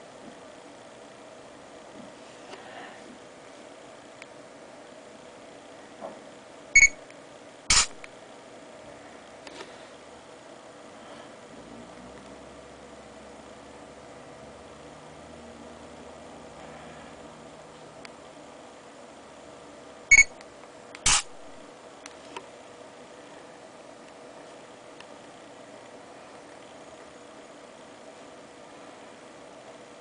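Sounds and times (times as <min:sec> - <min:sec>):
short electronic beep: 0:06.8 - 0:07.0, 0:20.1 - 0:20.3.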